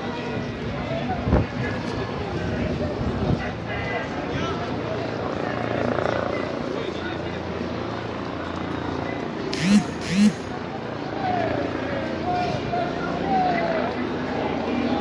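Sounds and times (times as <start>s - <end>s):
helicopter rumble overhead: 4.0s - 12.2s
scattered voices: 9.5s - 14.0s
man shouting: 9.6s - 10.4s.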